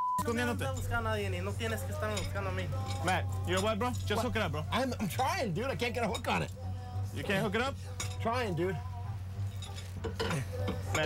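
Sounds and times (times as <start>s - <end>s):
light metallic clinking: 9.4s - 11.0s.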